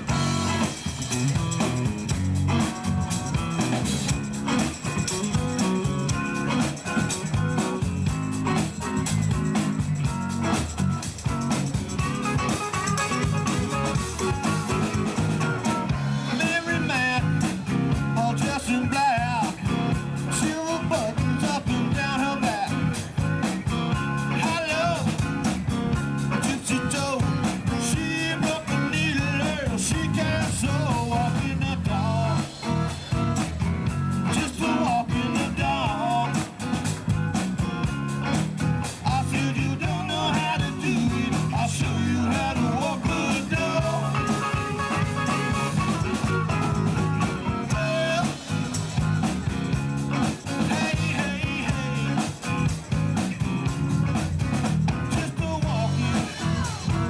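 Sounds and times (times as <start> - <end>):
bass guitar: 0.0 - 57.0
drums: 0.0 - 57.0
electric guitars: 0.0 - 57.0.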